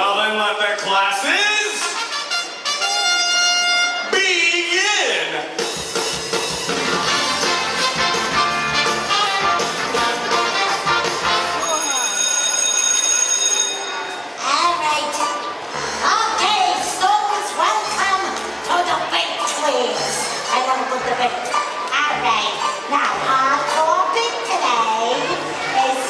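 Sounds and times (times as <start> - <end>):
electric bell ringing: 11.6 - 14.3
children's voices: 14.0 - 26.0.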